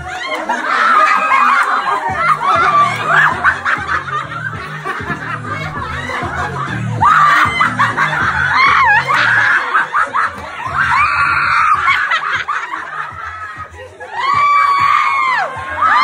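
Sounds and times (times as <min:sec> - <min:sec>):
people shrieking and laughing: 0:00.0 - 0:16.0
music with bass beat: 0:01.7 - 0:16.0
long high-pitched screams: 0:10.7 - 0:11.9, 0:14.1 - 0:16.0.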